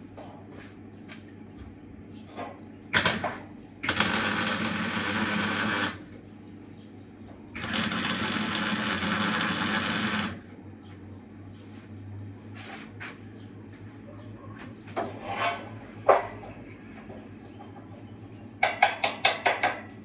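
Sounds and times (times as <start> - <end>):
arc welding run: 2.9 - 6.2, 7.5 - 10.5
arc welding strike: 3.0 - 6.1, 7.6 - 10.4.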